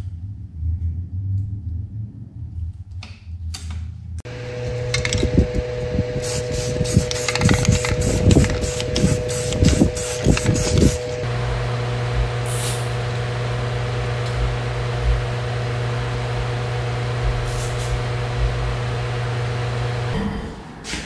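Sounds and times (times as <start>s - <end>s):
steady hum: 4.2s - 21.0s
spray paint can bursts: 6.2s - 11.2s.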